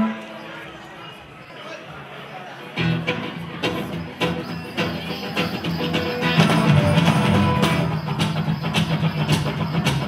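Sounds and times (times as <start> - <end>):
mandolin: 2.7 - 10.0
strummed acoustic guitars: 2.8 - 10.0
sharp percussion hits: 4.1 - 10.0.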